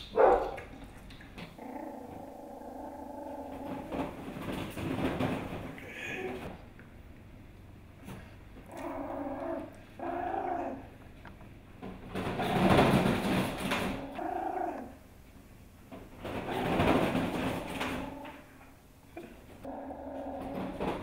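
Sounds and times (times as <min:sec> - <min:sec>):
puppy noisy sounds: 0:00.0 - 0:06.6, 0:08.0 - 0:11.1, 0:12.2 - 0:21.0
puppy whimpering growls: 0:01.4 - 0:04.2, 0:08.7 - 0:10.9, 0:13.9 - 0:15.0, 0:19.2 - 0:21.0.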